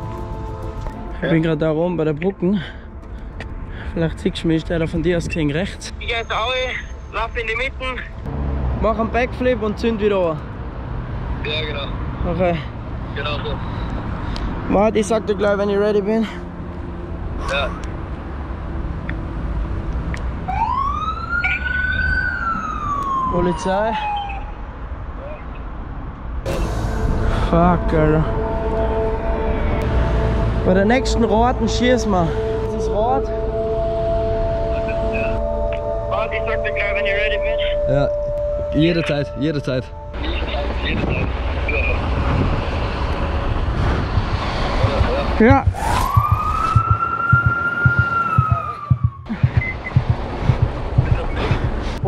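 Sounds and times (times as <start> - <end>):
rumble of passing cars: 0.0 - 52.0
siren wail: 20.4 - 24.7, 27.9 - 41.4, 45.4 - 49.4
music with pulsing beat: 44.1 - 51.9.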